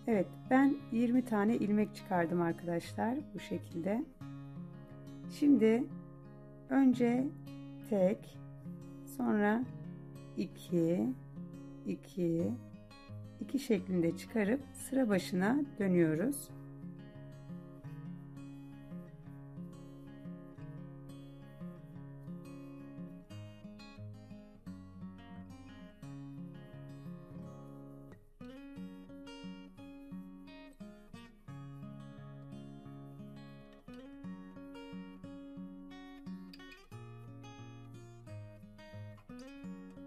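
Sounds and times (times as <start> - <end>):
plucked acoustic guitar melody: 0.0 - 40.0.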